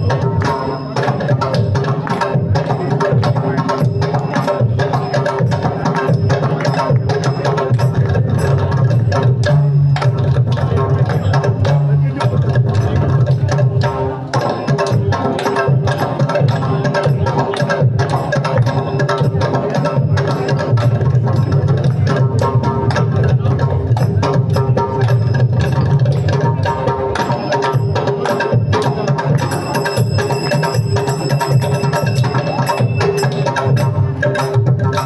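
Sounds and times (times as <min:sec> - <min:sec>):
hand drum strokes: 0:00.0 - 0:35.0.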